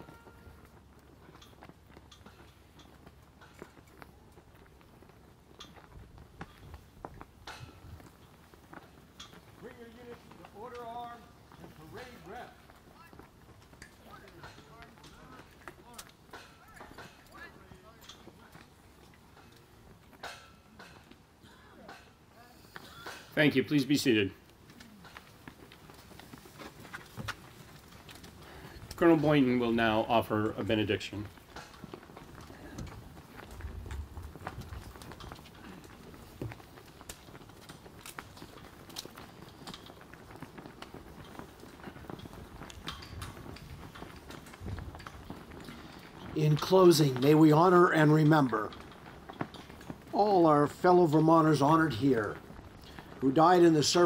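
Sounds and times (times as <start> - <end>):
faint clicks and shuffling: 0.0 - 54.0.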